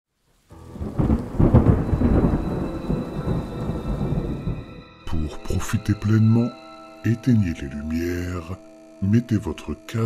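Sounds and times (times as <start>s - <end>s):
steady rain: 0.1s - 4.8s
rolling thunder: 0.6s - 4.8s.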